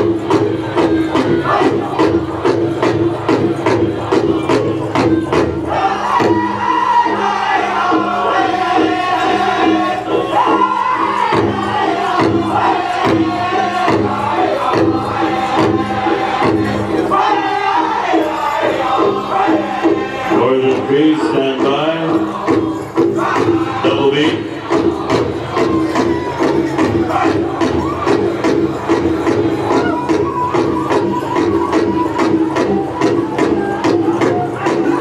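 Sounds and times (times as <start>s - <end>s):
big drum beat: 0.0s - 7.3s, 19.0s - 35.0s
group singing in high voices: 0.0s - 35.0s.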